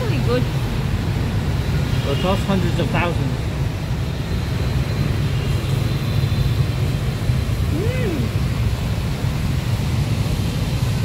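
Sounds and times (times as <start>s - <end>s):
street traffic rumble: 0.0s - 11.0s
rising-and-falling voice-like tone: 7.7s - 8.5s.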